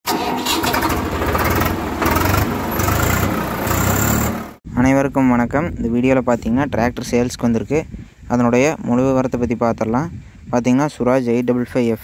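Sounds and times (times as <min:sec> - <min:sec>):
engine revving: 0:00.1 - 0:04.6.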